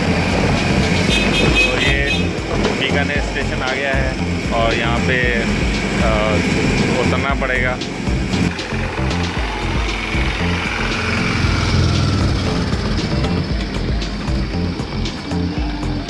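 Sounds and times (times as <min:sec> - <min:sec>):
music: 0:00.0 - 0:16.0
miniature diesel train running: 0:02.9 - 0:14.3.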